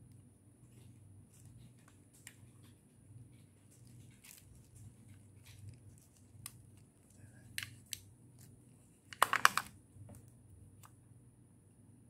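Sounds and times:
card packet crackling: 3.7s - 9.7s.

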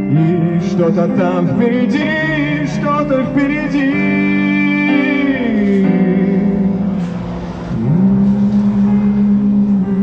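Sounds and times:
karaoke singing over backing track: 0.0s - 10.0s.

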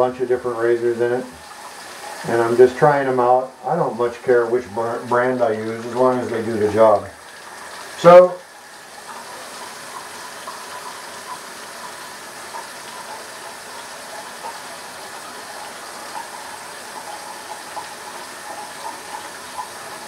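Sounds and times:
tap water running into sink: 0.0s - 20.0s.

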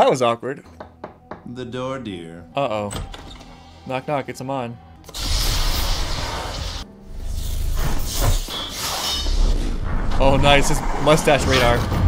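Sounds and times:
dramatic score: 1.0s - 12.0s
crashing effects: 5.1s - 12.0s.

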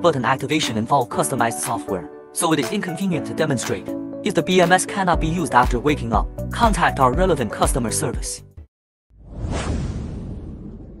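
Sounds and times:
whoosh sound effect: 9.2s - 11.0s
low rumble: 9.3s - 11.0s.

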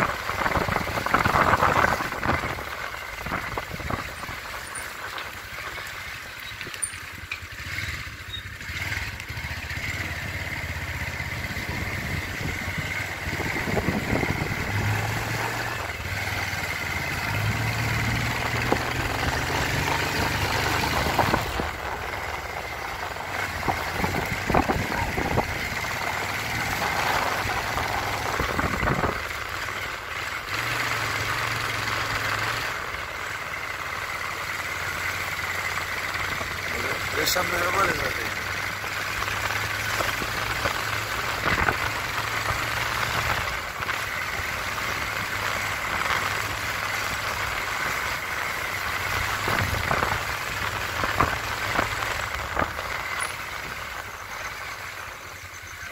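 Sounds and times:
vehicle engine humming: 0.0s - 55.9s.

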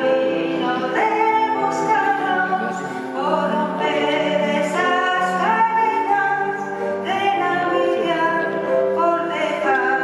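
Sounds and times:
grand piano: 0.0s - 10.0s
person singing: 0.0s - 10.0s.

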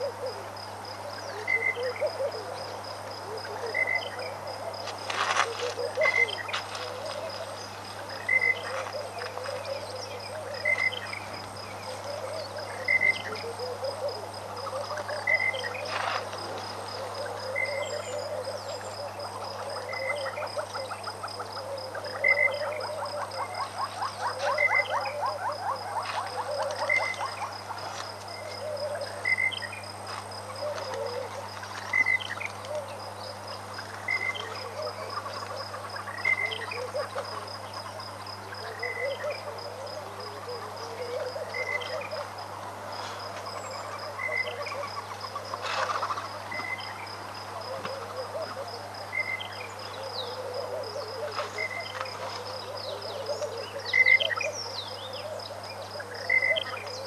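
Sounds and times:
frogs croaking: 0.0s - 57.0s.

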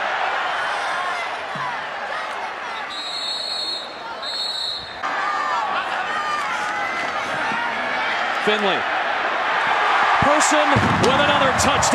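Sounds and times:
people shouting: 0.0s - 11.9s
stadium crowd noise: 0.0s - 11.9s
short high whistle blasts: 2.8s - 5.0s.

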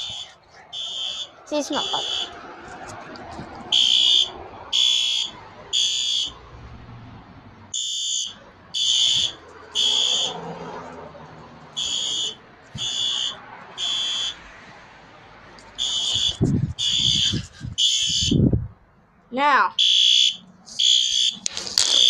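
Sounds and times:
fire alarm beeping: 0.0s - 2.3s, 3.7s - 6.4s, 7.8s - 10.4s, 11.8s - 14.4s, 15.8s - 18.4s, 19.8s - 21.4s.

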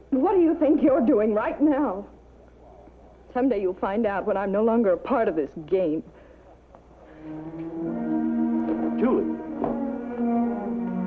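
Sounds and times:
dramatic orchestral score: 7.3s - 11.0s.

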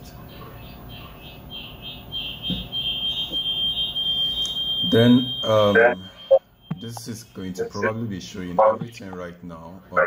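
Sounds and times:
audio feedback whistle: 1.0s - 7.0s.

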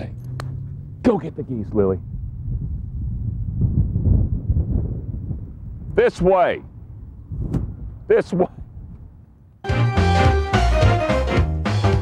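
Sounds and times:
wind rumbling on microphone: 0.0s - 9.6s.

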